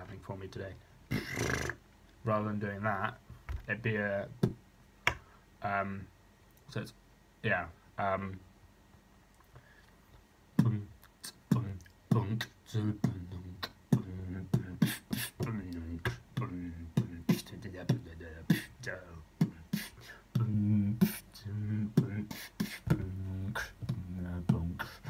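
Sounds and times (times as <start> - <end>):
human beatboxing: 1.1 - 1.8, 4.3 - 4.6, 10.6 - 25.0.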